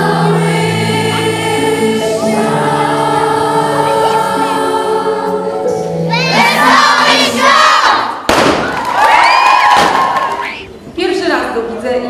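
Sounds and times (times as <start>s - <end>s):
children's choir singing: 0.0s - 8.3s
children cheering and shouting: 6.1s - 10.7s.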